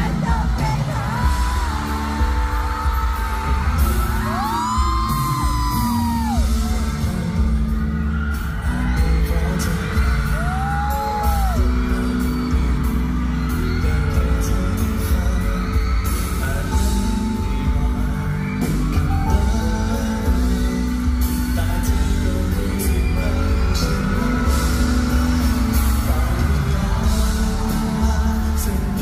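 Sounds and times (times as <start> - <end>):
loud band with heavy bass: 0.0 - 29.0
man singing into microphone: 0.0 - 29.0
high drawn-out screams: 1.0 - 7.0.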